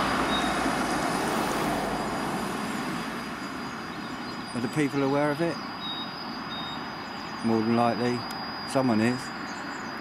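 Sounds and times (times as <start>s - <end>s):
passing vehicle rush: 0.0s - 6.5s
faint high-pitched tone: 4.5s - 10.0s.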